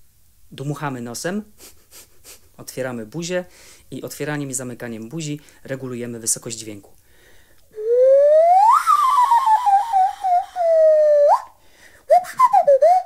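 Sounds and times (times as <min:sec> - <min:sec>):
nose flute whistling tone: 0:07.8 - 0:13.0.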